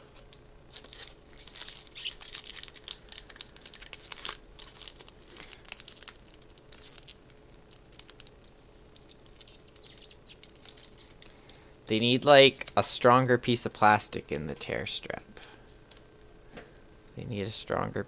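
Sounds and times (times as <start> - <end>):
foil wrapper crinkling: 0.7 - 12.9.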